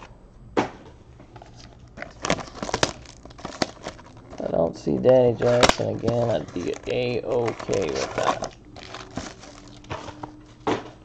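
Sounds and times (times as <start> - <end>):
wrapper crinkling: 1.4 - 10.4.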